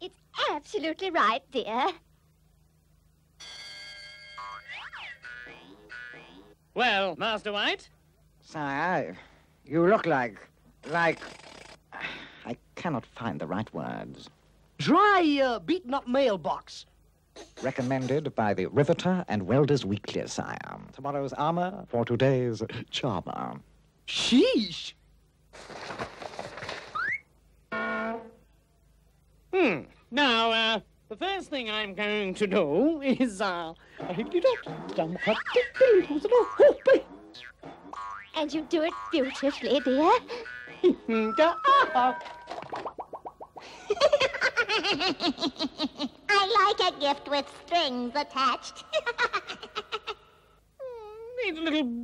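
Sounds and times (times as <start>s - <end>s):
springy cartoon boing: 4.4s - 6.6s, 27.0s - 28.4s, 34.0s - 43.6s
short horn-like note: 27.7s - 28.4s.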